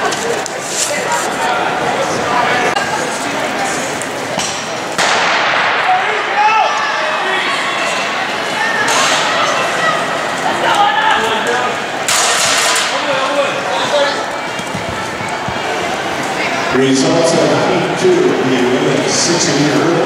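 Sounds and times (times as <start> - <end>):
spectators shouting and cheering: 0.0 - 20.0
starter's pistol shot: 5.0 - 5.8.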